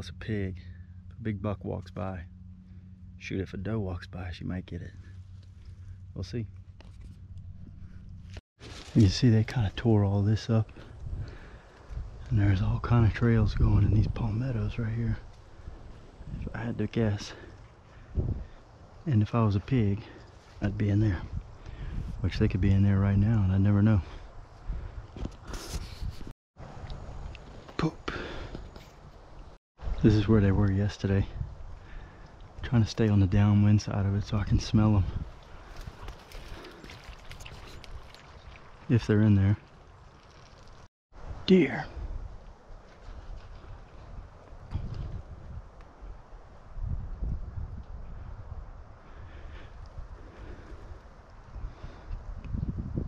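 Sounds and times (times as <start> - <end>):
wind rumble on microphone: 3.6 - 27.7, 28.6 - 53.0
footsteps crunching through dry grass: 6.6 - 9.9, 25.2 - 26.3, 35.1 - 40.8.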